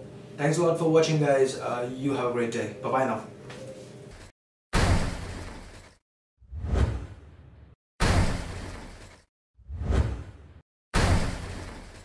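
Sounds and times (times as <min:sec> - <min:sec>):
sudden loud hit: 0:04.8 - 0:05.6, 0:08.0 - 0:09.0, 0:11.0 - 0:11.8.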